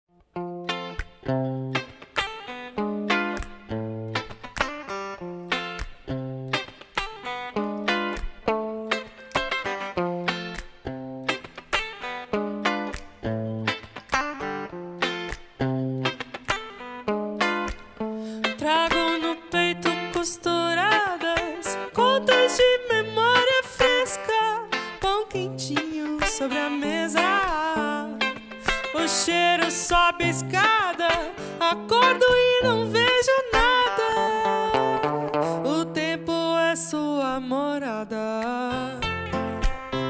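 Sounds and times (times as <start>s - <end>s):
electric guitar picking notes: 0.2s - 40.0s
person singing: 18.3s - 40.0s.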